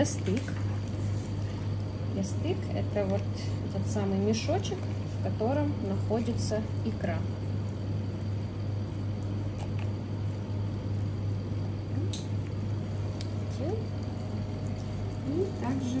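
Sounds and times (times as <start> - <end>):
low hum: 0.0 - 16.0.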